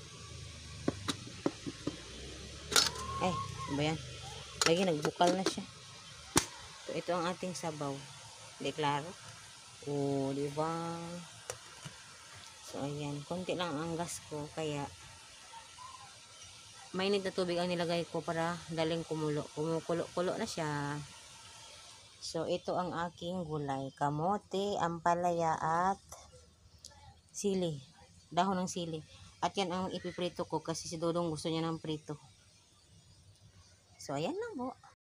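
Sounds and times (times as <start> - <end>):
faint hiss of pot on burner: 0.0 - 24.6.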